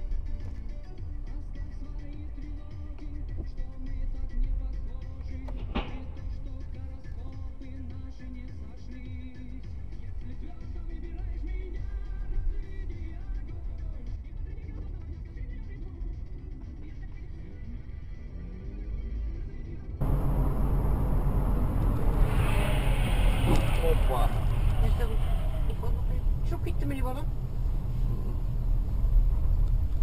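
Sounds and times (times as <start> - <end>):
car engine and road rumble: 0.0 - 30.0
radio playing faintly: 20.0 - 30.0.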